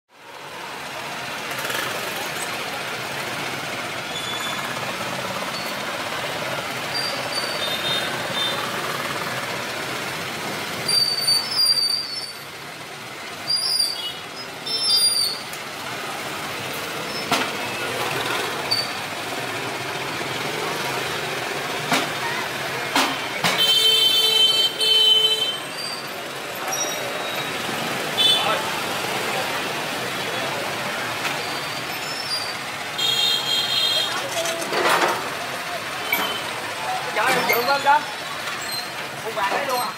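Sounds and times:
traffic noise: 0:00.1 - 0:39.9
vehicle horn: 0:07.6 - 0:08.7, 0:23.5 - 0:25.7, 0:28.2 - 0:28.6, 0:33.0 - 0:34.3
people's voices: 0:14.3 - 0:39.9.

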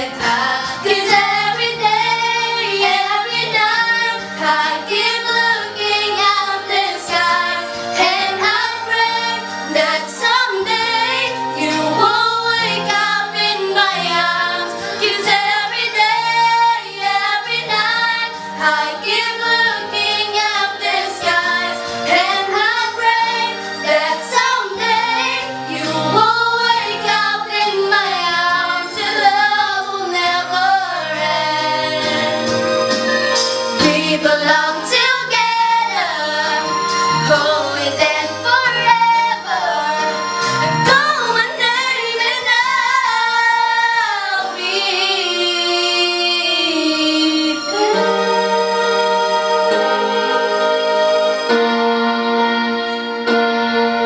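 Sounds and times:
girls singing together: 0:00.0 - 0:32.5, 0:33.8 - 0:50.7.

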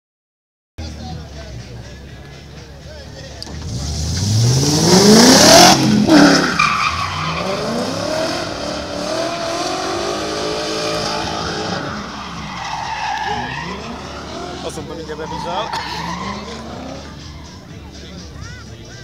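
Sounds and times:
race car engine revving: 0:03.4 - 0:17.6.

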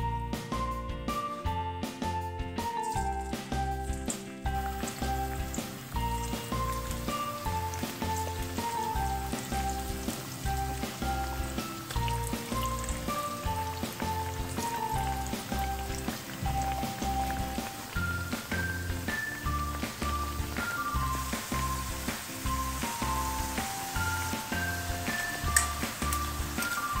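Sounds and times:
background music with bass: 0:00.0 - 0:27.0
hot oil sizzling: 0:02.6 - 0:27.0.

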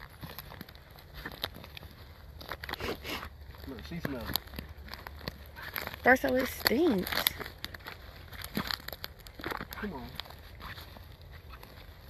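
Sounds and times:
rustling through grass: 0:00.0 - 0:12.0.

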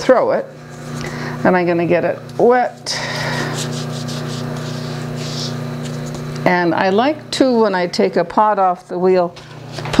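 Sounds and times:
potter's wheel motor humming: 0:00.0 - 0:10.0
wet sponge rubbing wooden board: 0:03.3 - 0:05.9.

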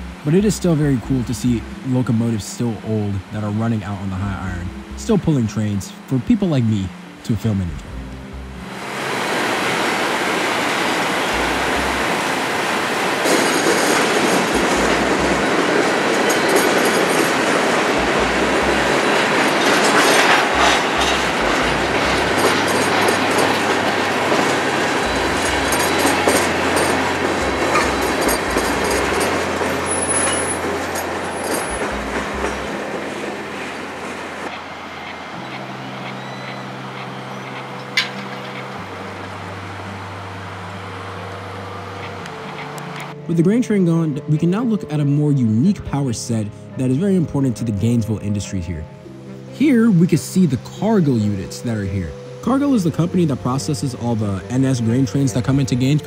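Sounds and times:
high wheel squeal: 0:08.9 - 0:39.8
train wheels clicking over rail joints: 0:11.2 - 0:38.9.

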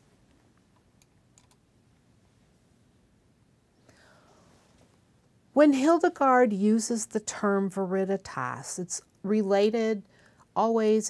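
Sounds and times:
soft hiss: 0:00.0 - 0:05.4.

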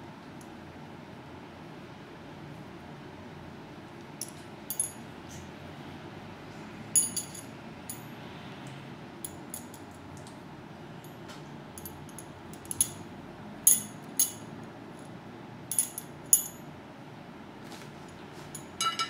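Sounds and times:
metal pieces clinking: 0:04.2 - 0:05.0, 0:07.0 - 0:08.0, 0:13.7 - 0:14.5, 0:15.7 - 0:16.6, 0:18.6 - 0:19.0.

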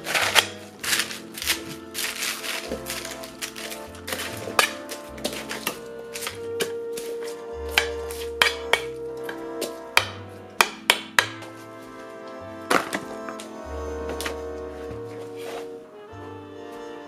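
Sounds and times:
background music with bass line: 0:00.0 - 0:17.0.

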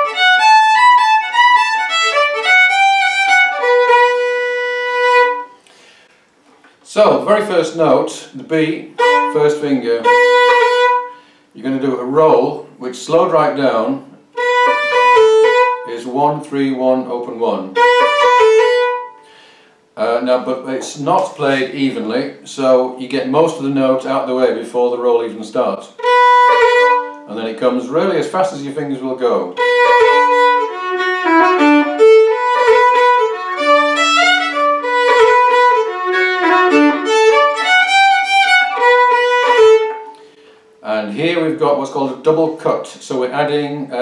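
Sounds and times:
fiddle note with grace notes: 0:00.0 - 0:05.6, 0:08.9 - 0:11.3, 0:14.3 - 0:16.0, 0:17.6 - 0:19.5, 0:26.0 - 0:27.4, 0:29.5 - 0:40.6.

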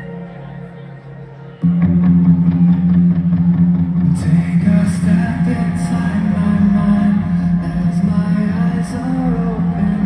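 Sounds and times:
rock band holding low chord: 0:01.6 - 0:10.0.

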